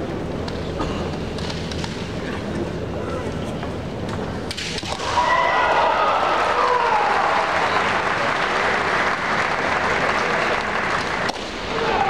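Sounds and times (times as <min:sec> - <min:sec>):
crowd applauding: 0:05.6 - 0:12.0.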